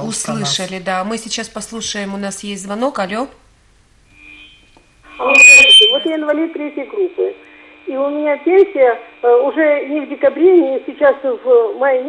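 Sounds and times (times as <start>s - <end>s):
person speaking over phone line: 0.0s - 0.7s, 5.2s - 12.0s
shrill steady whistle: 4.1s - 6.2s
faint high tone: 4.5s - 6.4s.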